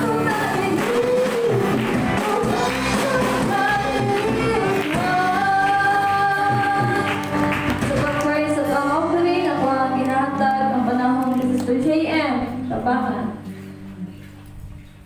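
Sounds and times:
band with electric guitars: 0.0s - 11.8s
woman singing into microphone: 0.0s - 14.5s.

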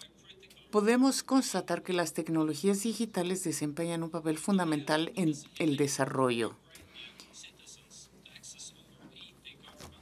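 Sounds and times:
faint whispery speech: 6.5s - 10.0s.

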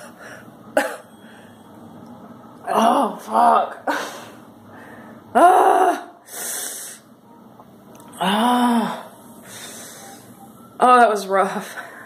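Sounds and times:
woman groaning: 2.6s - 4.3s, 5.3s - 6.2s, 8.1s - 9.1s.

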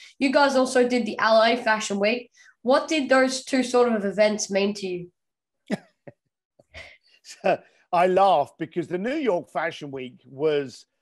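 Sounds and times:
man chuckling: 5.7s - 6.3s.

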